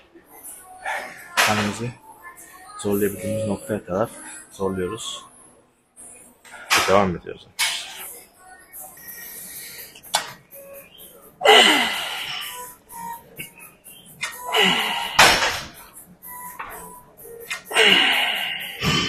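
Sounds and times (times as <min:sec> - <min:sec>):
music: 0:00.0 - 0:06.6, 0:07.7 - 0:19.0
man straining exhalations: 0:17.7 - 0:19.0.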